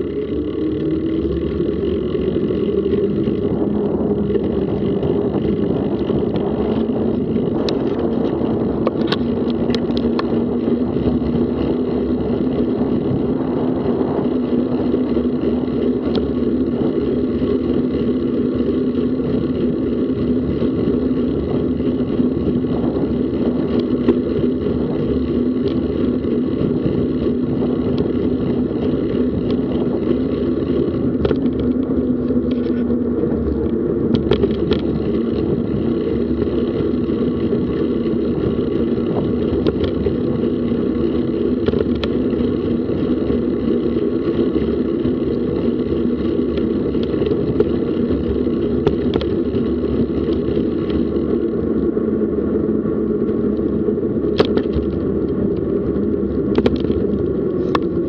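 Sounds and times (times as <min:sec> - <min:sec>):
sharp clicks from bumps: 0:00.0 - 0:58.0
wind and tyres rolling: 0:00.0 - 0:58.0.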